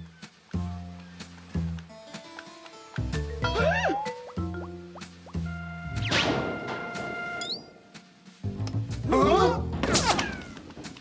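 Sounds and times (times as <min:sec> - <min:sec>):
cartoon music: 0:03.2 - 0:06.2.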